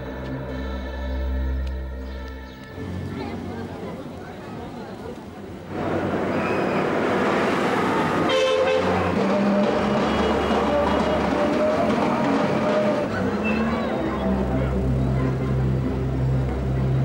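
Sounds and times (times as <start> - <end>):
city street traffic: 0.0 - 17.0
vehicle horn: 8.2 - 11.2.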